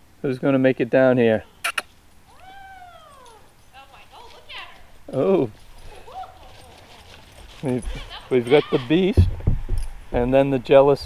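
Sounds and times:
man talking: 0.2s - 1.5s, 5.1s - 5.6s, 7.6s - 9.3s, 10.1s - 11.0s
dog whining: 1.4s - 3.6s.

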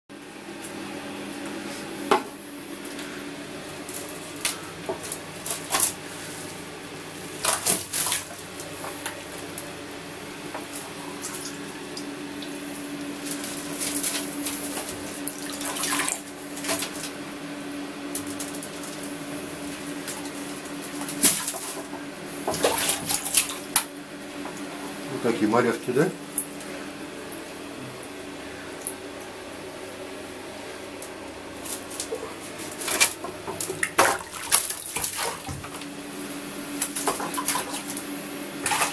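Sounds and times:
steady low hum: 0.1s - 38.9s
water splashing in a plastic bucket: 13.3s - 17.2s, 22.5s - 23.8s, 32.0s - 35.8s, 36.8s - 38.0s, 38.6s - 38.9s.

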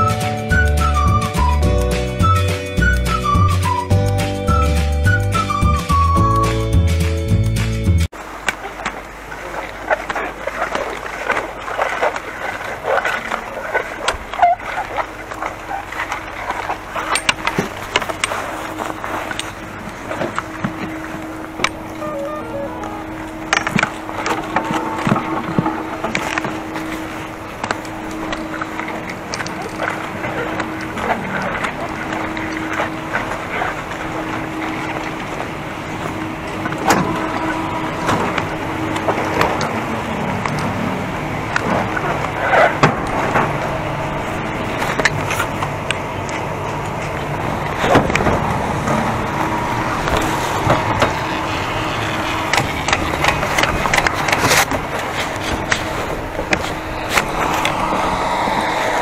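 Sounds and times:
machinery humming low: 11.4s - 59.0s.

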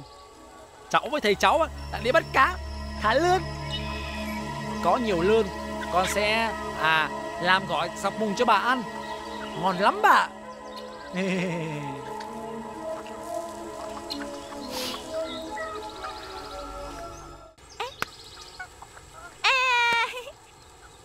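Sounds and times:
soft background music: 0.0s - 17.6s
man laughing: 11.1s - 12.2s.

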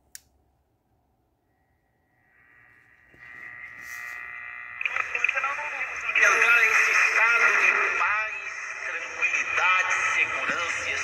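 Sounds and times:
talk from small radio speaker: 4.8s - 11.0s.

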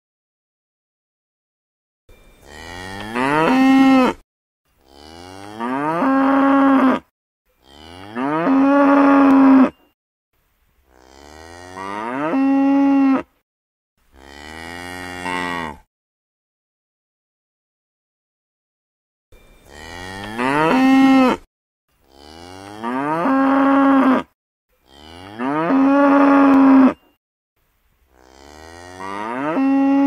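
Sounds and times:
cow mooing: 2.4s - 4.2s, 4.8s - 9.9s, 10.9s - 13.4s, 14.2s - 15.9s, 19.7s - 21.5s, 22.1s - 27.0s, 28.1s - 30.0s.

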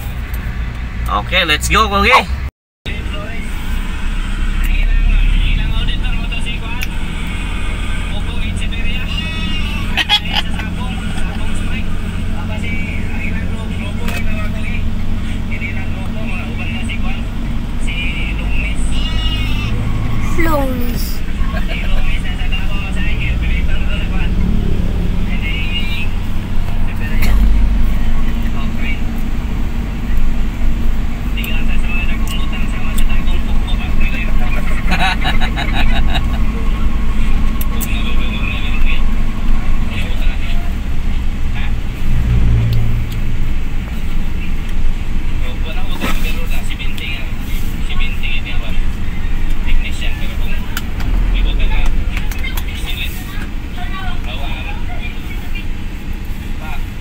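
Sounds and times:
car engine and road rumble: 0.0s - 57.0s
indistinct voices: 1.0s - 44.8s.

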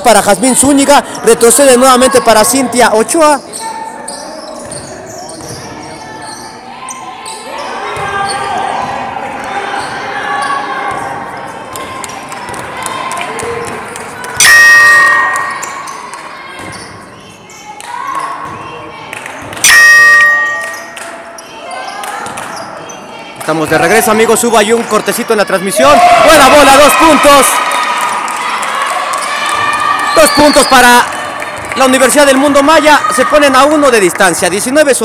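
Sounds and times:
players' voices: 0.0s - 35.0s.

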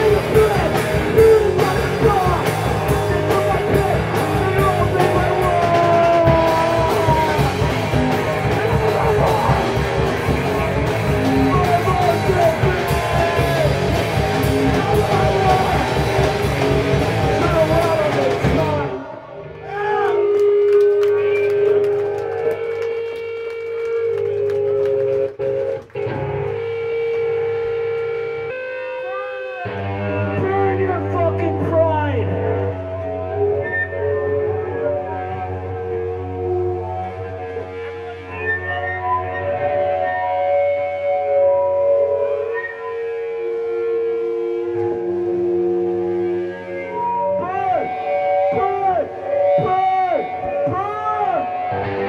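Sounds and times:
electric guitar droning: 0.0s - 52.0s
punk band playing: 0.0s - 52.0s.

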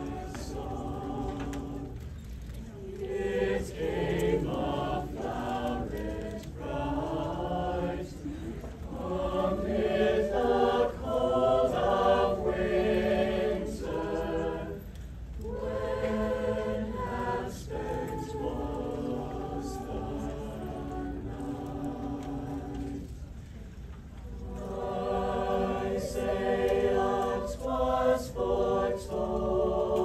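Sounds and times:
choir singing a carol: 0.0s - 23.4s, 24.2s - 30.0s.

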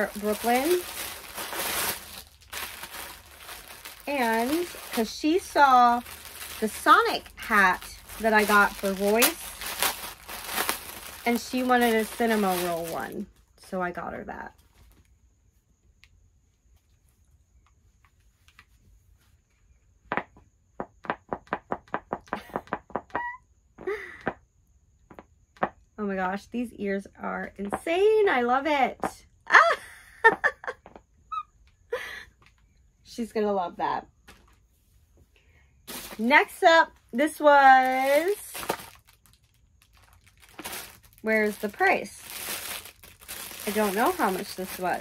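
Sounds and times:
packaging crinkling: 0.0s - 13.4s, 35.9s - 45.0s.

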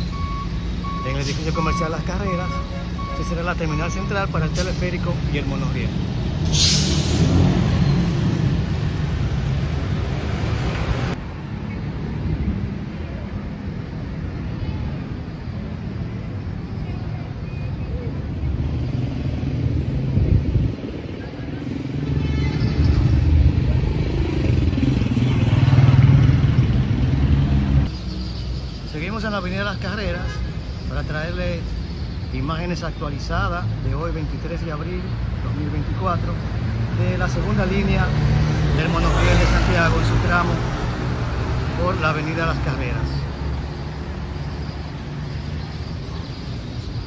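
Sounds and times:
cars and vans passing: 0.0s - 47.0s
low traffic rumble: 0.0s - 47.0s.

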